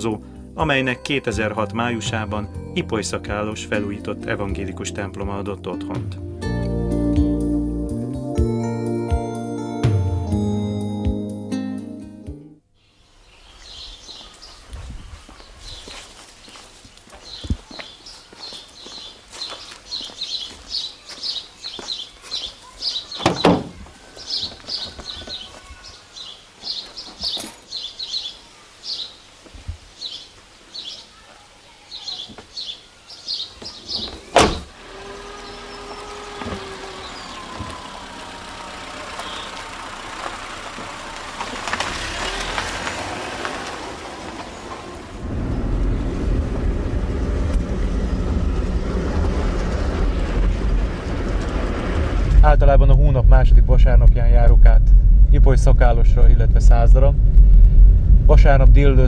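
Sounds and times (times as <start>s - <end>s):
songbird chirping: 12.7s - 51.6s
car door shutting: 23.2s - 23.8s, 33.6s - 38.4s
thump: 23.2s - 23.8s, 34.0s - 34.7s
car engine running: 34.0s - 53.3s.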